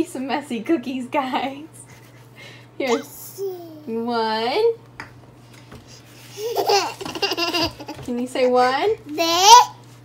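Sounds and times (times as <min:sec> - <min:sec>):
toddler laughing: 0:06.3 - 0:08.1.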